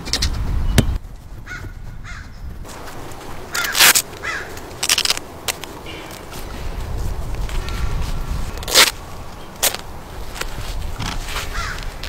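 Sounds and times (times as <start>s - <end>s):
crow cawing: 1.5s - 2.4s, 3.5s - 4.6s, 11.5s - 11.9s.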